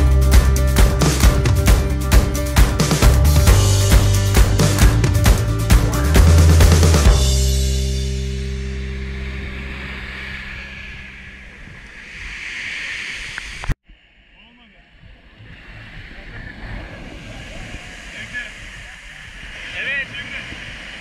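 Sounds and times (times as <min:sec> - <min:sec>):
music: 0:00.0 - 0:11.0
sea waves breaking on a beach: 0:08.0 - 0:21.0.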